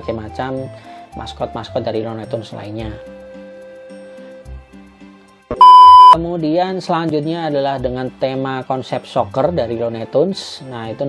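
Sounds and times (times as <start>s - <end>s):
soft background music: 0.0s - 5.6s, 6.2s - 11.0s
loud high test-tone beep: 5.6s - 6.2s.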